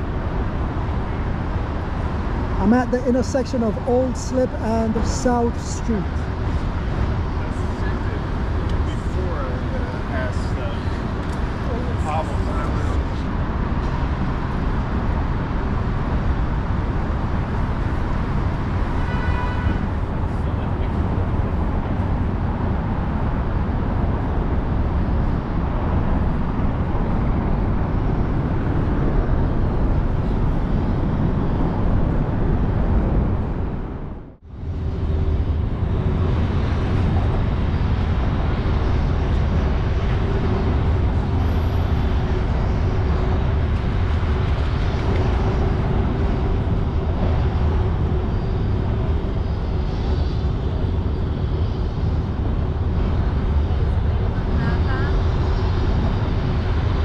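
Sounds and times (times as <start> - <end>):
city traffic rumble: 0.0 - 57.0
steady low hum: 19.8 - 57.0.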